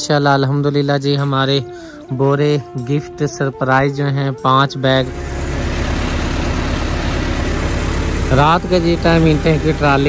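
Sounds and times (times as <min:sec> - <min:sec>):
tractor engine throbbing: 0:04.8 - 0:10.0.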